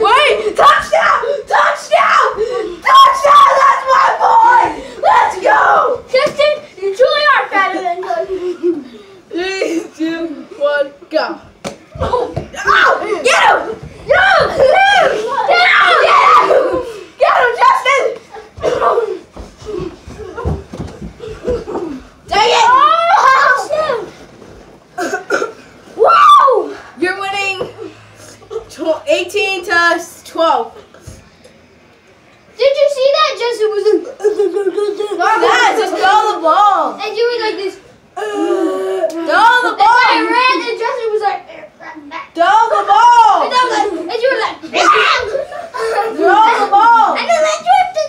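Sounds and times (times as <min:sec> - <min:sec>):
boys shouting excitedly: 0:00.0 - 0:08.5, 0:10.6 - 0:20.6, 0:21.4 - 0:24.2, 0:26.0 - 0:27.9, 0:32.6 - 0:48.0
sharp slaps: 0:11.6 - 0:11.9.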